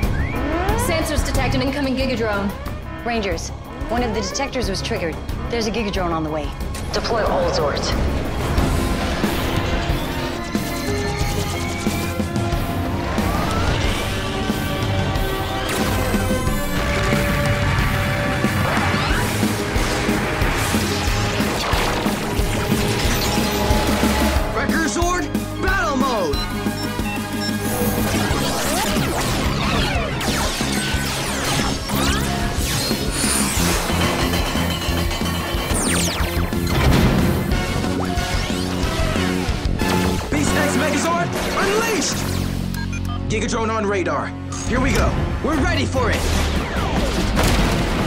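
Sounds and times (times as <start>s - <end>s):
dramatic music: 0.0s - 48.0s
rising whooshes: 6.6s - 10.6s
crashing impacts: 12.6s - 24.5s.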